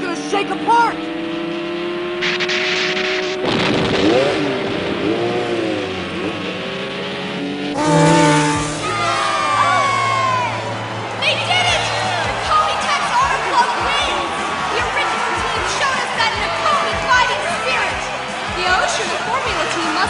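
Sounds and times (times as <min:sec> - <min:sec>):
motorcycle engine at full throttle: 0:00.0 - 0:12.1
noise with sweeping pitch glides: 0:07.8 - 0:09.6.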